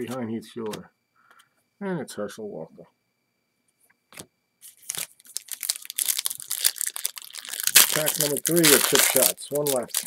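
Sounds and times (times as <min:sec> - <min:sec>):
foil wrapper crinkling: 0:04.7 - 0:10.0.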